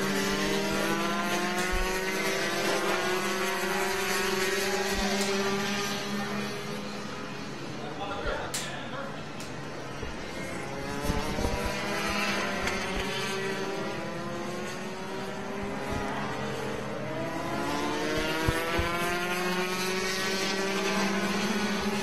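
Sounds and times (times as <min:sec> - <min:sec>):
kart engines buzzing: 0:00.0 - 0:22.0.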